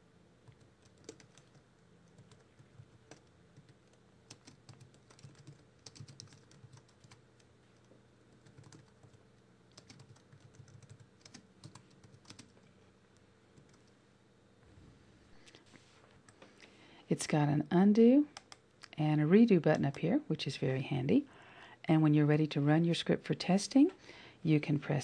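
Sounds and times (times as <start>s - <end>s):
low steady hum: 0.0s - 25.0s
typing on computer keyboard: 0.5s - 7.5s, 8.4s - 12.6s.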